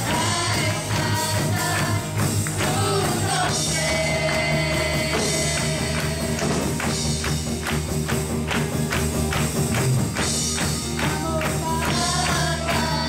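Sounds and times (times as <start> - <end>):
singing voices: 0.0 - 7.2, 10.9 - 13.0
upbeat worship music: 0.0 - 13.0.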